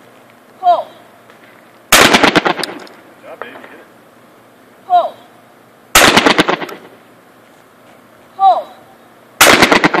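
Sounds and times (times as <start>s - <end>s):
loud shotgun shots: 1.9s - 2.9s, 5.9s - 6.9s, 9.4s - 10.0s.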